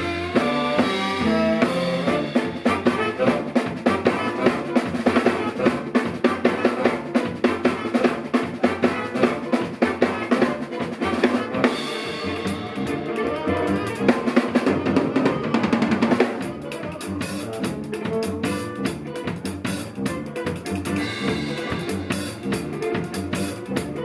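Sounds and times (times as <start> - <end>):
bass guitar: 0.0 - 24.0
drum kit beat: 0.0 - 24.0
electric guitar: 0.0 - 24.0.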